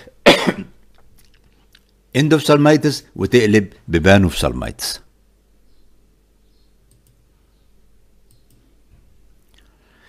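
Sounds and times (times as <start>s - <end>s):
faint low hum: 0.0s - 10.0s
computer mouse clicks: 6.8s - 7.2s, 8.2s - 8.7s.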